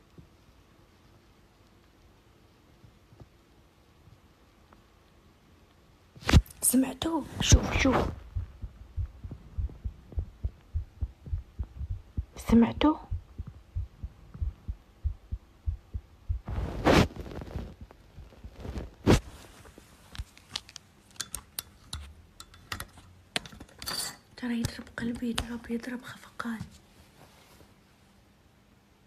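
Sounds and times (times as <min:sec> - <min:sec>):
phone rubbing against clothing: 0:07.3 - 0:08.4, 0:16.4 - 0:17.8
heartbeat thumps: 0:07.4 - 0:19.0.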